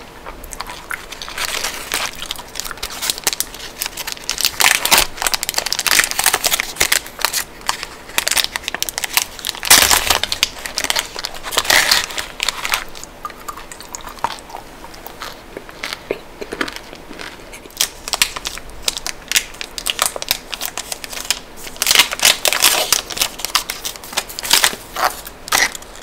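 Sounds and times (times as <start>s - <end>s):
chocolate wrapper crinkling: 0.5s - 26.0s.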